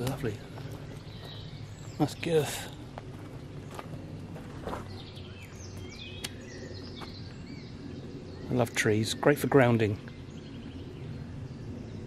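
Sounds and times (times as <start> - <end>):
birds chirping and whistling: 0.0 - 12.0
low background hum: 0.0 - 12.0.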